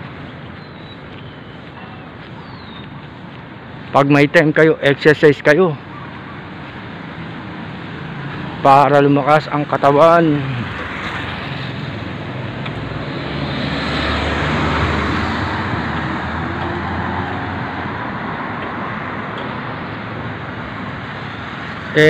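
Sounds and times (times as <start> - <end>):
car passing with tyre noise: 0.0 - 22.0
steady traffic hum: 0.0 - 22.0.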